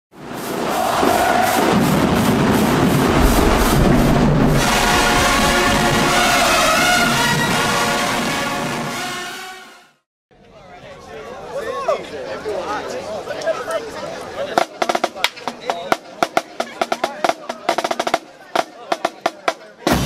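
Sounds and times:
even beat of hits: 3.0 - 7.4
dense held chord: 3.1 - 8.3.

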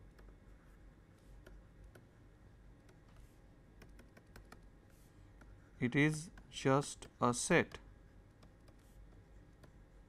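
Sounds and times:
stylus tapping on tablet: 3.8 - 4.7.

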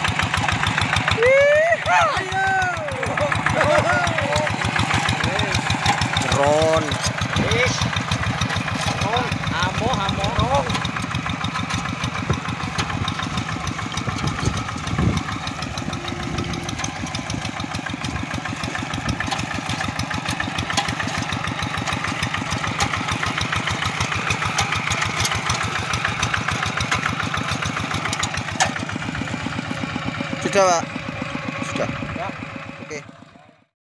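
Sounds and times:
diesel engine chugging: 0.0 - 33.7.

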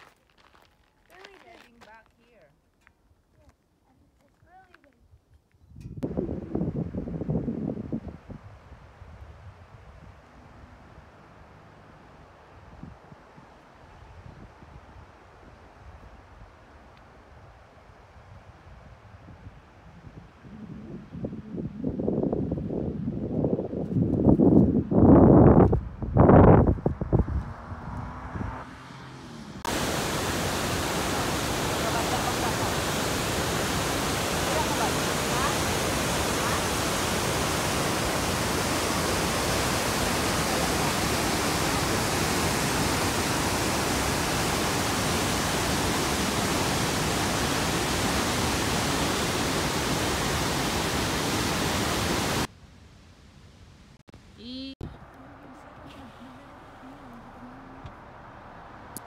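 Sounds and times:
waterfall rushing: 29.7 - 52.5.

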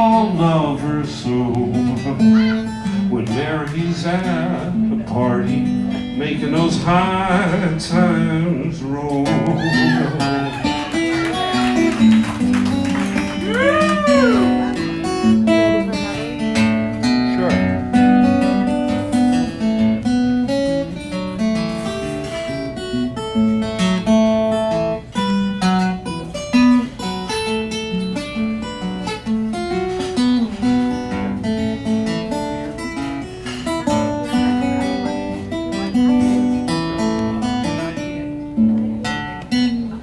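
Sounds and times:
acoustic guitar picking: 0.0 - 40.0.

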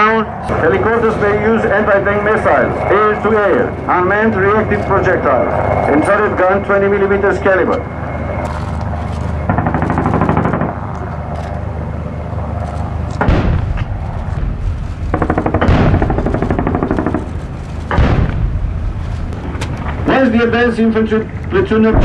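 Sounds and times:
helicopter rotor beat: 0.0 - 22.0
gunfire: 9.5 - 10.8, 13.2 - 18.9
sharp booms: 13.2 - 20.1.

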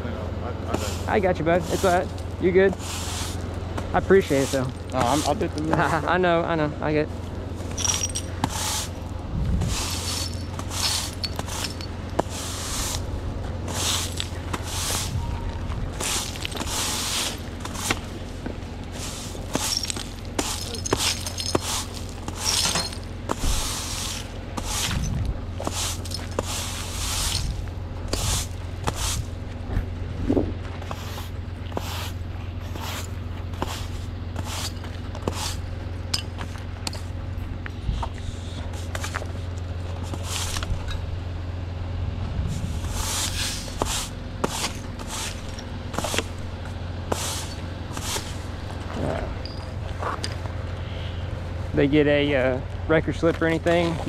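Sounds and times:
steady low hum: 0.0 - 54.0
push broom sweeping concrete: 0.7 - 6.1, 7.6 - 29.4, 30.8 - 37.1, 38.1 - 40.8, 42.5 - 48.8.

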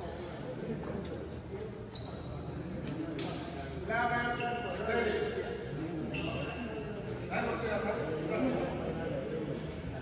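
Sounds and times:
shoes squeaking on court floor: 6.1 - 6.6.

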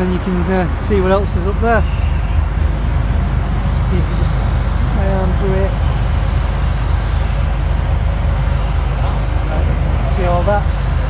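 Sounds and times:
diesel engine rumbling: 0.0 - 11.0.

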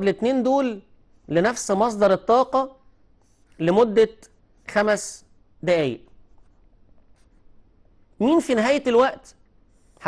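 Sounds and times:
marker writing on paper: 3.0 - 5.0, 6.0 - 8.0, 9.6 - 10.0.

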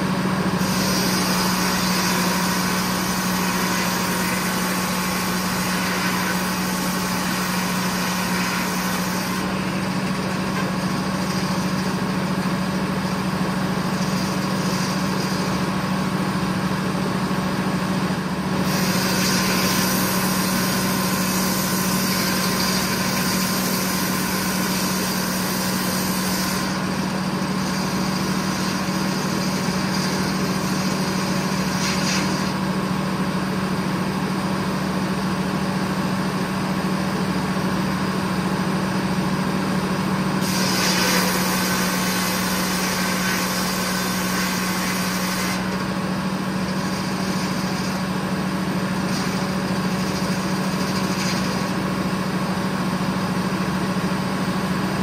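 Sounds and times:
bright hissy saw noise: 0.6 - 16.0, 18.6 - 32.8, 40.4 - 48.2.

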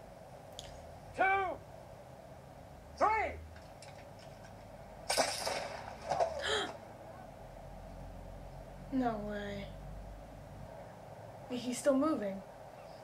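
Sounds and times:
man shouting: 1.1 - 1.6, 3.0 - 3.4
pistol gunshots: 5.1 - 6.4.

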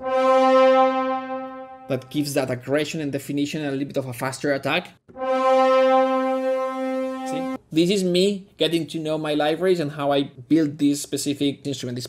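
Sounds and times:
french horn section held note: 0.0 - 2.0, 5.1 - 7.6.

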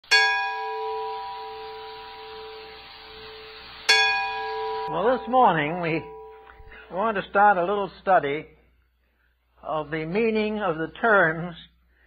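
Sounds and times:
bell-like chime ringing: 0.0 - 7.0.

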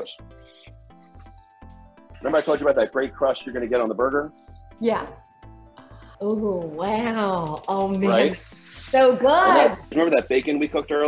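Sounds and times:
background music with low beat: 0.0 - 11.0.

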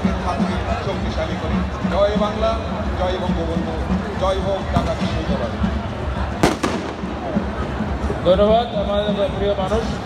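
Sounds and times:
crowd chatter: 0.0 - 10.0
firecracker bangs: 6.4 - 7.5.

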